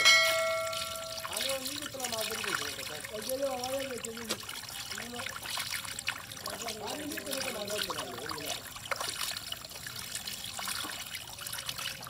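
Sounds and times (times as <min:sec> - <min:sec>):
shallow water trickling: 0:00.0 - 0:12.0.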